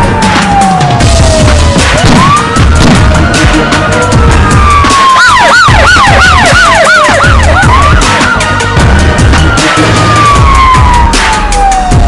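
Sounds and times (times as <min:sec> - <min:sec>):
dramatic music with beat: 0:00.0 - 0:12.0
siren wail: 0:00.0 - 0:12.0
siren yelp: 0:00.0 - 0:12.0.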